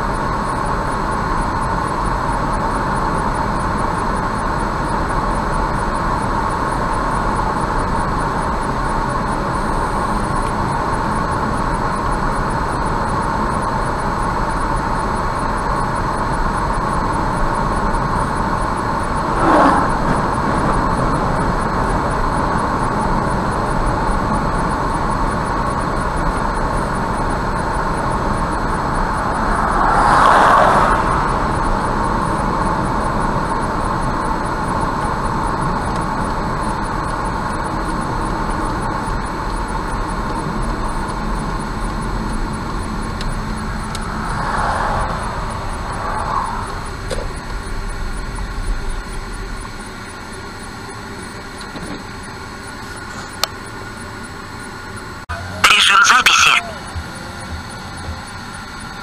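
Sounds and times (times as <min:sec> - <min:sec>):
car road and engine noise: 0:00.0 - 0:59.0
short burst of noise: 0:55.5 - 0:56.8.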